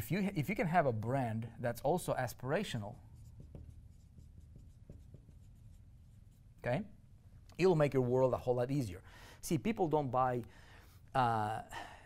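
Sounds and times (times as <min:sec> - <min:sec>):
marker writing on whiteboard: 0:02.9 - 0:06.6.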